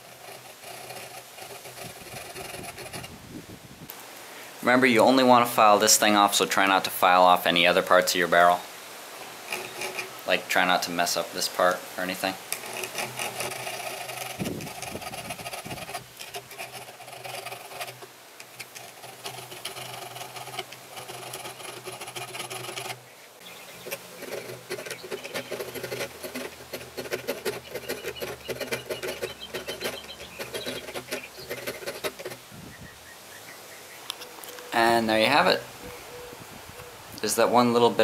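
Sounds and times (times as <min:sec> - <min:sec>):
hand file rasping on metal: 0:00.0 - 0:03.2, 0:09.2 - 0:10.2, 0:12.5 - 0:23.0, 0:23.7 - 0:32.5.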